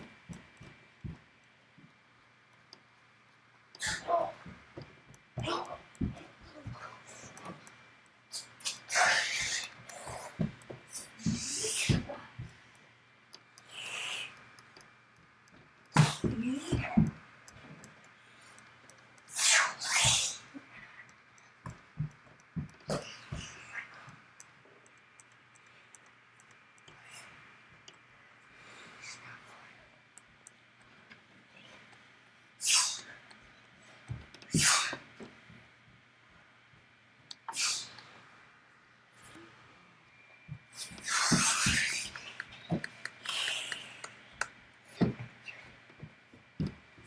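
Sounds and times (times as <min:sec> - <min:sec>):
faint low hum: 0:00.0 - 0:47.0
breath-like noises: 0:13.6 - 0:14.6, 0:40.7 - 0:45.8.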